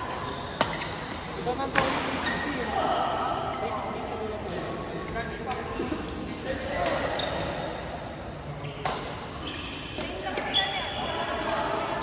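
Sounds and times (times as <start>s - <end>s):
rackets hitting shuttlecock: 0.0s - 2.3s, 8.8s - 9.2s
sneakers squeaking on court: 8.6s - 11.0s.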